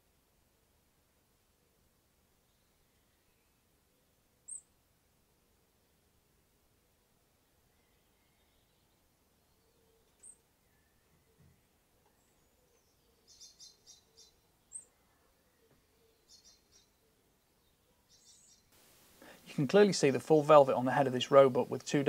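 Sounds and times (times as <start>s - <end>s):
bird chirping faintly: 1.5s - 4.8s, 6.8s - 22.0s.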